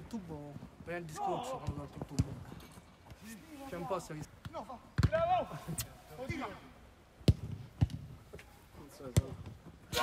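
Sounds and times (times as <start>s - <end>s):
football kicked: 4.4s - 5.4s, 7.2s - 8.1s, 9.1s - 10.0s.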